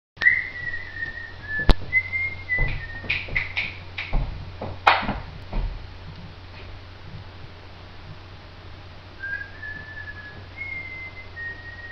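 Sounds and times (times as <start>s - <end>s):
person whistling a tune: 0.2s - 3.3s, 9.2s - 11.9s
knocks and thumps: 1.5s - 7.3s.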